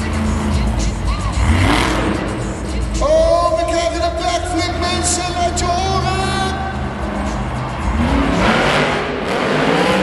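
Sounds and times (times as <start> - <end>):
monster truck engine at full throttle: 0.0 - 10.0
loud rush of noise: 5.9 - 10.0.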